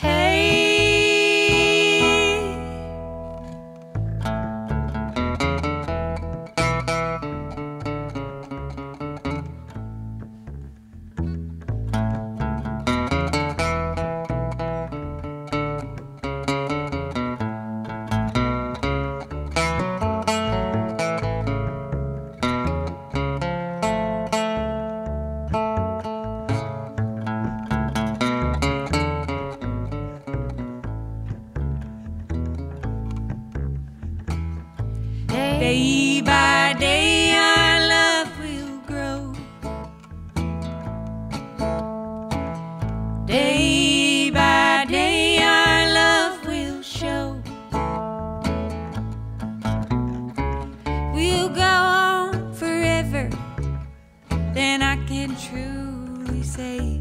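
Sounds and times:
person singing: 0:00.0 - 0:03.0, 0:35.2 - 0:39.5, 0:43.3 - 0:47.6, 0:51.2 - 0:53.4
acoustic guitar picking: 0:00.0 - 0:57.0
plucked upright bass: 0:00.0 - 0:57.0.

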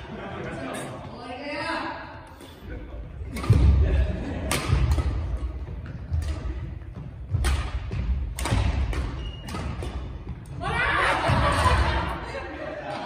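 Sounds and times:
rackets striking shuttlecocks: 0:03.3 - 0:12.2.

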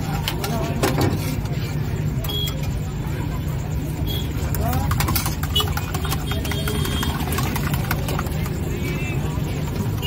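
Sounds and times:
background voices chattering: 0:00.0 - 0:10.0.

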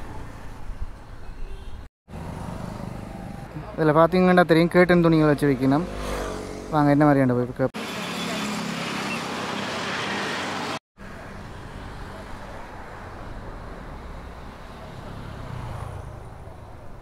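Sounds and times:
low rumble of traffic: 0:00.0 - 0:17.0
vehicle passing by: 0:02.1 - 0:07.2, 0:07.9 - 0:17.0.

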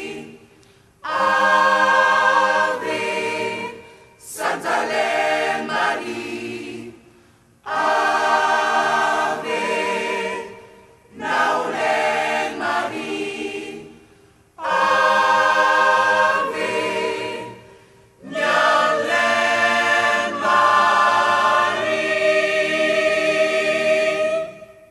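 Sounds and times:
gospel choir singing: 0:00.0 - 0:24.9.

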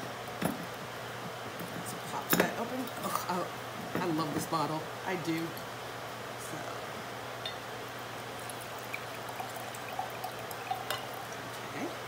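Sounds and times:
steady low hum: 0:00.0 - 0:12.0
wine pouring into a glass: 0:08.2 - 0:11.6.

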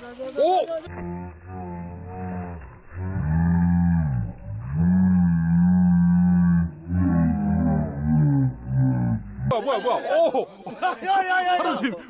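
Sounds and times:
low drawn-out pitched calls: 0:00.8 - 0:09.5.

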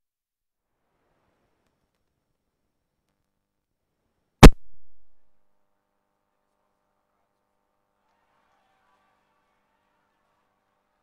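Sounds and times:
microphone pop: 0:04.4 - 0:05.2.

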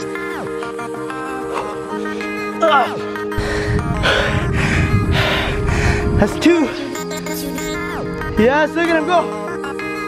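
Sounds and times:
background music: 0:00.0 - 0:10.0
heavy panting: 0:03.0 - 0:06.2.

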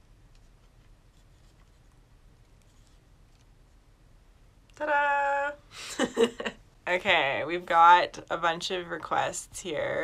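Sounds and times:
faint scratches and light taps: 0:00.3 - 0:03.8.

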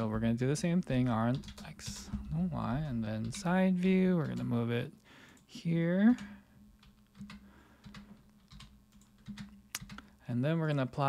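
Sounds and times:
keyboard keys clicking: 0:00.8 - 0:04.6, 0:06.2 - 0:10.0.

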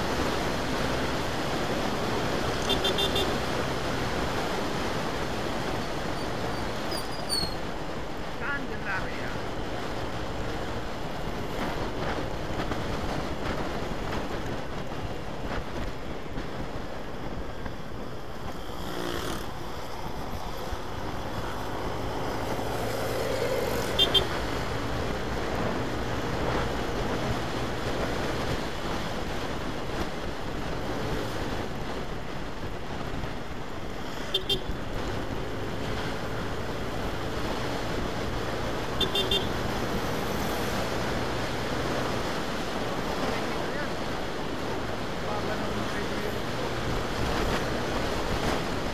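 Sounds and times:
wind and road noise: 0:00.0 - 0:48.9
short double horn beeps: 0:02.6 - 0:03.4.

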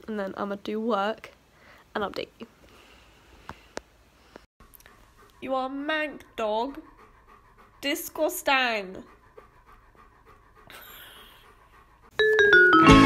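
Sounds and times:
woman talking to a dog: 0:05.4 - 0:06.9, 0:07.8 - 0:09.1.

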